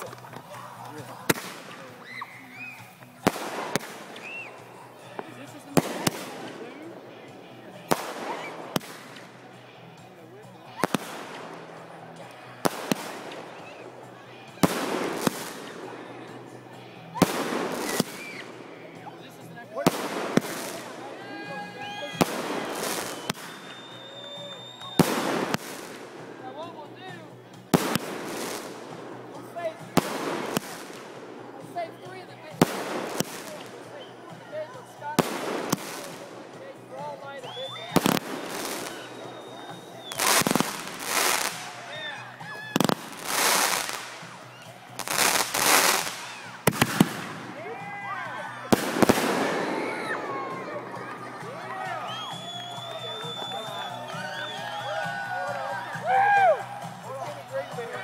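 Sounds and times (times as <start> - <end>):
fireworks bangs: 0.0 - 47.9, 48.6 - 51.5
fireworks whistling: 1.0 - 9.5, 10.7 - 47.8, 48.7 - 55.2.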